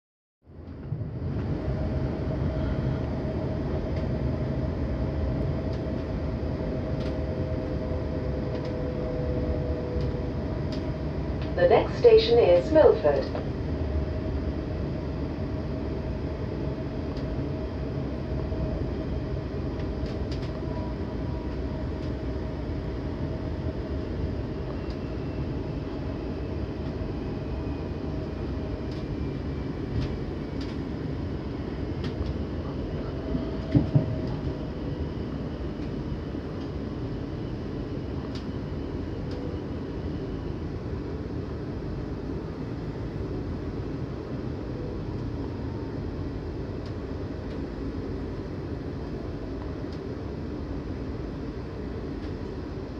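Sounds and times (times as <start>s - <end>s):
train wheels rumbling on rail: 0.5s - 52.9s.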